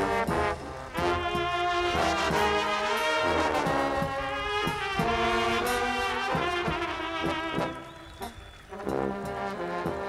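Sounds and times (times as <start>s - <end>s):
brass band playing: 0.0s - 10.0s.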